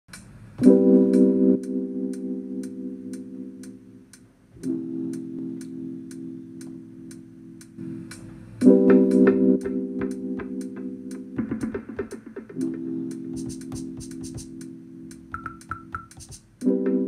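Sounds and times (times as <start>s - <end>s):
hi-hat-like tick: 0.1s - 0.4s, 13.4s - 14.7s
sustained keyboard chords: 0.1s - 17.0s.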